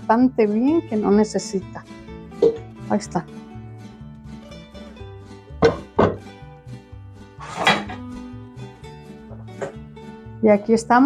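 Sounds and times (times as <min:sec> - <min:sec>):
background music: 0:00.0 - 0:11.0
ladle knocking metal pot: 0:02.4 - 0:02.7, 0:05.6 - 0:06.3.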